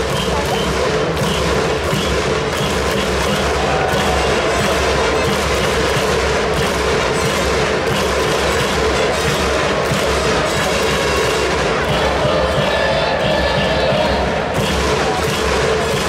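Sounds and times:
crowd cheering: 0:00.0 - 0:16.0
drum beat: 0:00.0 - 0:16.0
people clapping: 0:00.0 - 0:16.0.

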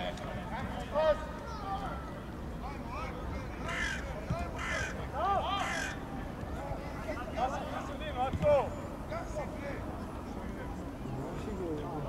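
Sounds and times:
crow cawing: 0:03.6 - 0:05.0, 0:05.6 - 0:06.0.

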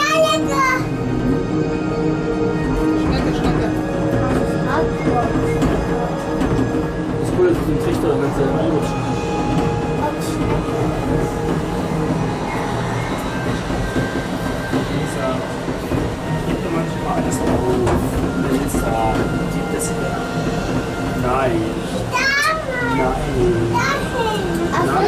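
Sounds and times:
monorail car running on track: 0:00.0 - 0:25.0
music: 0:00.0 - 0:25.0.

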